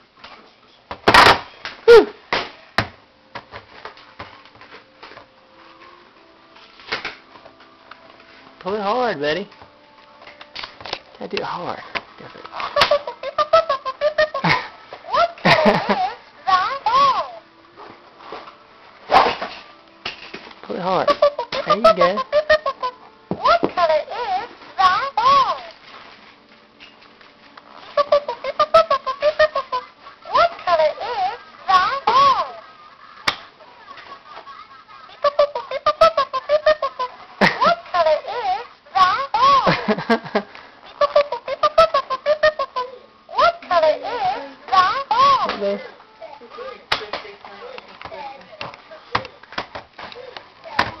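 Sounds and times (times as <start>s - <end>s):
hands slapping plastic toy: 10.3s - 13.1s, 33.2s - 33.5s, 46.9s - 51.0s.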